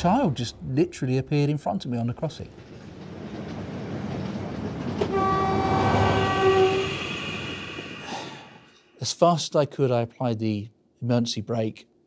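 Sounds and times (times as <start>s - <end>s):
passenger train running on track: 0.0s - 8.8s
train horn blast: 5.0s - 7.4s.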